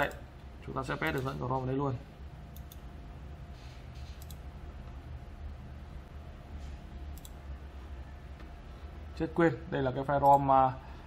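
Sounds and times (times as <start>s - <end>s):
faint low hum: 0.0s - 11.0s
computer mouse clicking: 2.5s - 2.8s, 4.0s - 4.5s, 7.1s - 7.4s.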